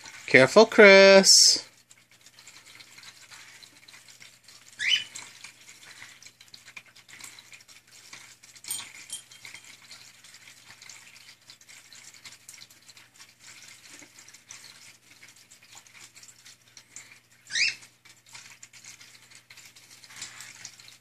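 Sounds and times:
cockatiel chirping: 17.5s - 17.8s.

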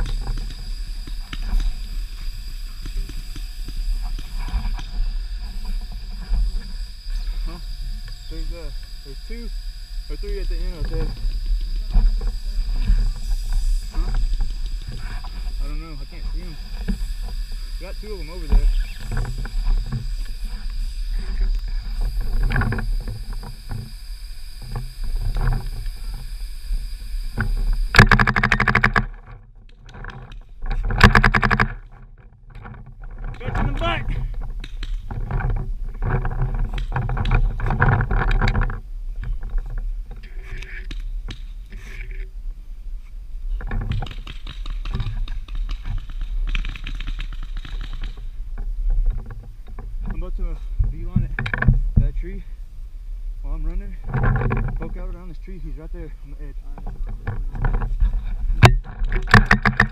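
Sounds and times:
rustling movement: 0.0s - 59.9s.

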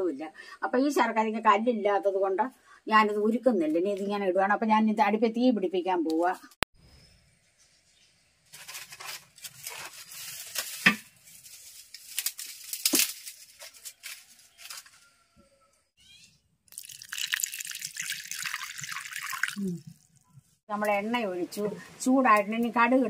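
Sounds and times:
wet splashy noise: 16.7s - 20.1s.

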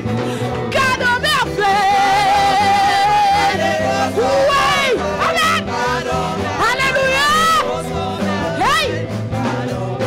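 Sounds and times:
live worship band playing: 0.0s - 10.0s.

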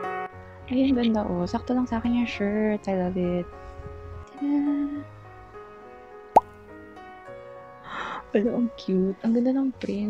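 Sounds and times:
soft piano music: 0.0s - 10.0s.

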